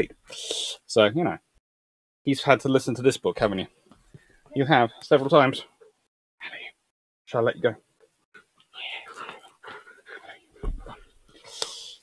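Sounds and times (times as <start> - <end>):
man speaking softly: 6.4 - 7.8.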